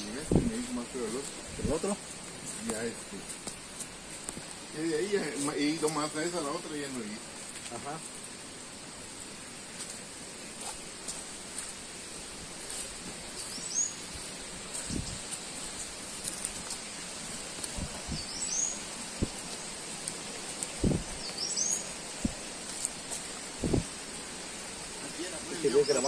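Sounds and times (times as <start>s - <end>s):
footsteps on rocky dirt trail: 9.7s - 10.0s, 10.6s - 11.9s, 12.5s - 23.9s
songbird upward call: 21.2s - 21.9s.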